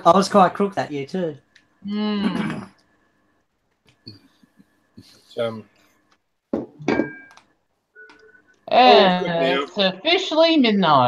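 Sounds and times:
person saying uh: 0:08.8 - 0:09.7.

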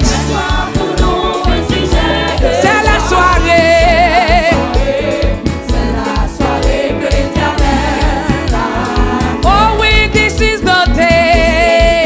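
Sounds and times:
band with drums and bass: 0:00.0 - 0:12.0
woman singing lead: 0:00.0 - 0:12.0.

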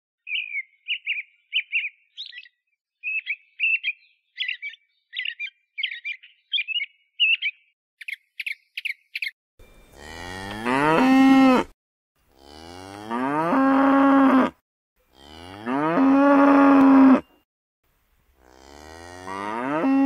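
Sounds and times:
small bird chirping: 0:00.2 - 0:09.4
cattle mooing: 0:10.0 - 0:11.7, 0:12.3 - 0:17.2, 0:18.4 - 0:20.0.

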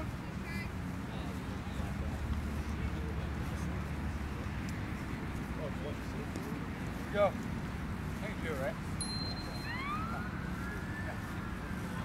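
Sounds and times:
distant siren wailing: 0:09.2 - 0:12.0.

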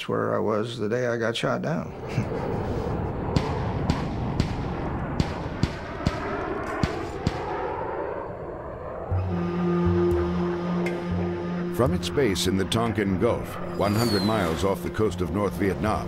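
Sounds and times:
steady rushing noise: 0:01.8 - 0:16.0
sharp thumps: 0:03.2 - 0:08.0
sustained music: 0:08.8 - 0:16.0.

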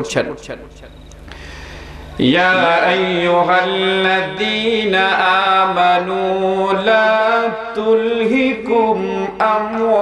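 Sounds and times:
man chanting into microphone: 0:02.2 - 0:10.0.

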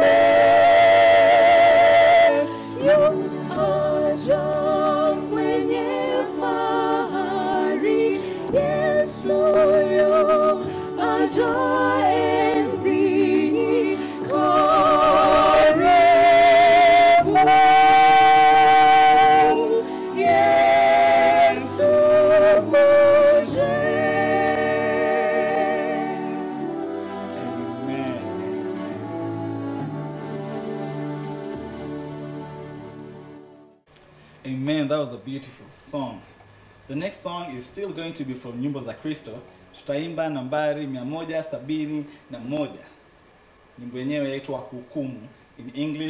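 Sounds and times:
voices singing a hymn: 0:00.0 - 0:33.2.

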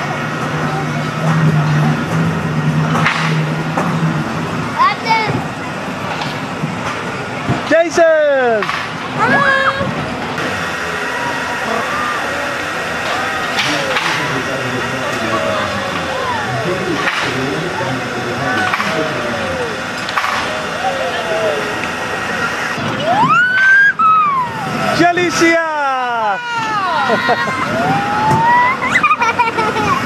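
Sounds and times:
roller coaster train rumbling: 0:00.0 - 0:30.0
children calling and squealing: 0:04.7 - 0:05.9, 0:09.2 - 0:10.0, 0:14.9 - 0:30.0.

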